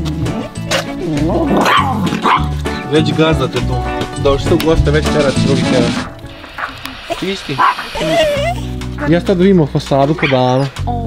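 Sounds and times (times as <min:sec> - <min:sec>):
background music with steady beat: 0:00.0 - 0:10.1
dog barking: 0:00.3 - 0:02.5, 0:07.6 - 0:08.4, 0:10.2 - 0:10.8.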